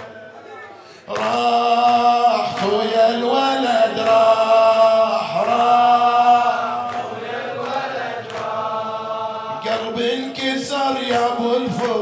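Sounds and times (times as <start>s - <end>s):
man chanting unaccompanied: 1.1s - 7.1s, 9.5s - 12.0s.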